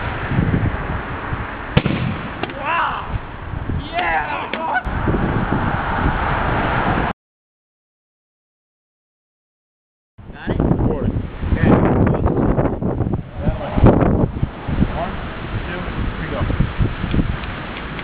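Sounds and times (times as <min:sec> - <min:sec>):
steady outdoor noise: 0:00.0 - 0:07.1, 0:10.2 - 0:18.0.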